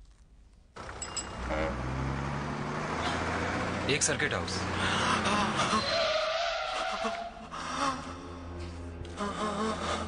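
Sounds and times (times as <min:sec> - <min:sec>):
bus driving: 0:00.8 - 0:10.0
bus brake squeal: 0:05.7 - 0:07.2.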